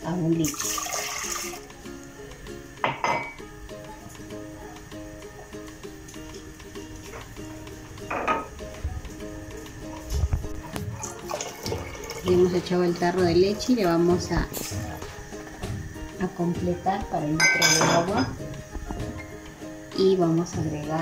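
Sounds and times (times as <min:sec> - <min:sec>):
soft background music: 0:00.0 - 0:21.0
can clinking against metal pot: 0:02.8 - 0:03.4, 0:08.0 - 0:08.5, 0:17.4 - 0:18.4.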